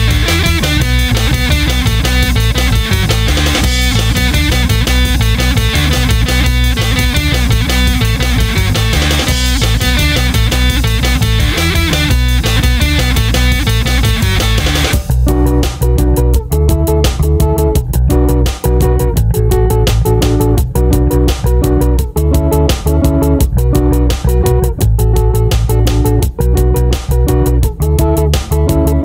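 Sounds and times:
instrumental rock music: 0.0 - 29.0.

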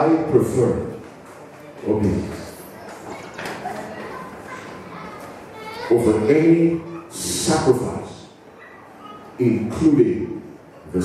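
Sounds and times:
man speaking loudly: 0.0 - 1.0, 1.8 - 2.6, 5.9 - 8.4, 9.4 - 11.0
faint children's voices: 0.0 - 11.0.

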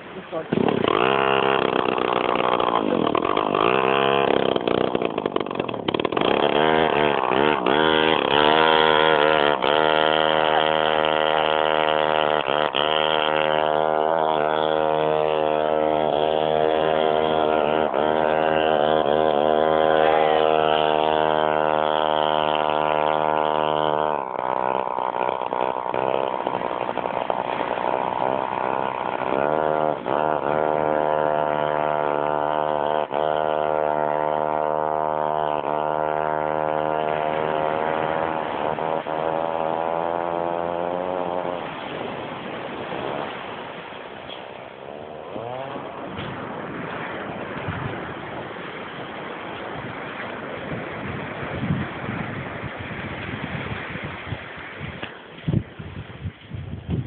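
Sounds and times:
scooter engine revving: 0.0 - 55.6.

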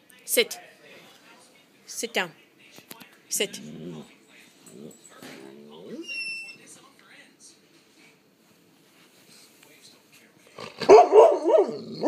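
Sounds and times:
dog bark-howling: 10.8 - 12.0.

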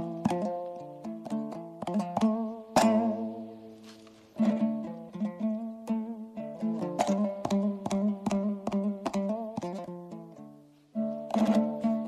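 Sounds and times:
dombra strumming: 0.0 - 12.0.

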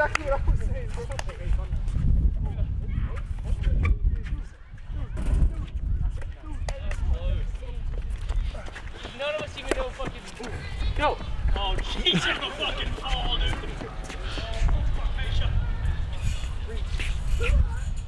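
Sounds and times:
young men shouting and whooping: 9.2 - 16.1.

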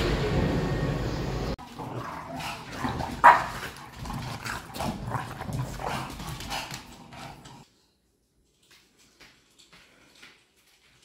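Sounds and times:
dog barking: 3.2 - 3.6.

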